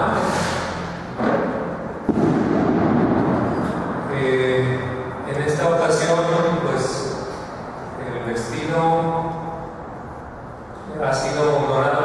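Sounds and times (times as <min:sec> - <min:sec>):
dense rumbling noise: 0:00.0 - 0:08.6.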